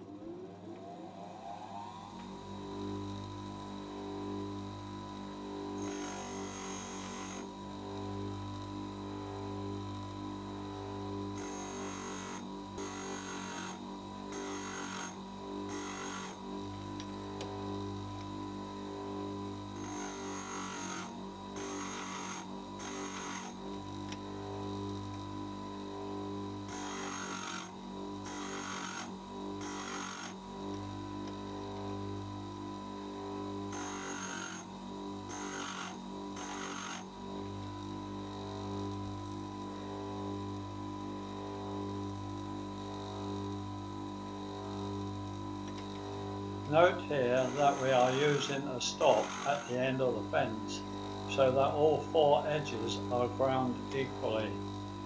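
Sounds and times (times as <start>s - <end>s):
bench grinder motor hum: 0.0s - 55.0s
metal grinding bursts: 46.8s - 53.0s.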